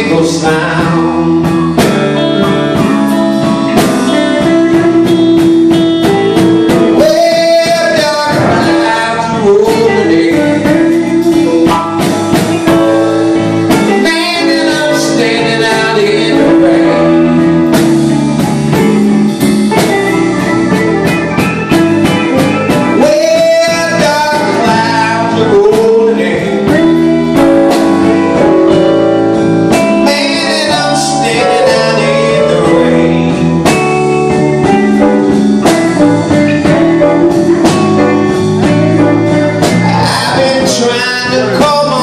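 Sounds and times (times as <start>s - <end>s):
drum kit: 0.0s - 42.0s
electric guitars: 0.0s - 42.0s
keyboards: 0.0s - 42.0s.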